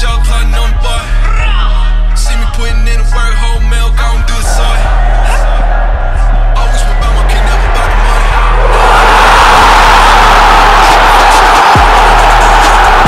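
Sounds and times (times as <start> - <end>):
hip-hop music with bass beat: 0.0 - 13.0.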